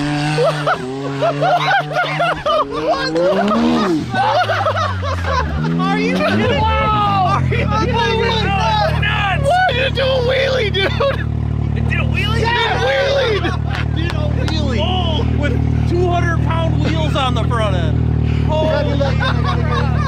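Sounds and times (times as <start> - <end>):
engine idling: 0.0 - 20.0
people talking and laughing: 0.0 - 20.0.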